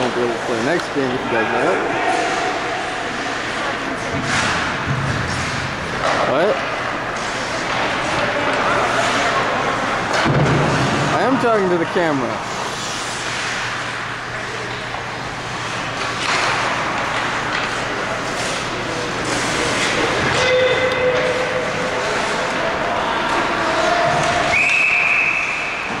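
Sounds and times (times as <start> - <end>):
low rink hum: 0.0 - 26.0
high whistle: 24.5 - 25.9.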